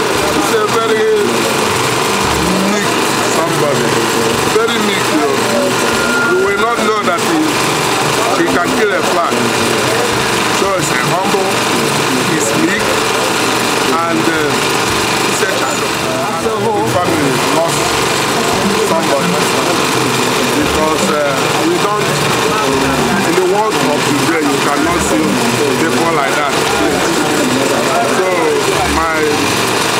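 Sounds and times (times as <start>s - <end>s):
man speaking into a microphone: 0.0s - 1.5s, 2.3s - 7.6s, 8.2s - 9.8s, 10.5s - 13.0s, 13.9s - 14.7s, 15.3s - 18.0s, 18.6s - 29.4s
steady background hum: 0.0s - 29.9s.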